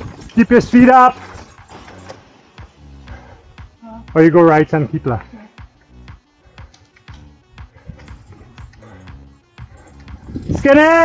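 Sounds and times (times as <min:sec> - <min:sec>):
mountain bike rolling on rough trail: 0:00.0 - 0:02.8.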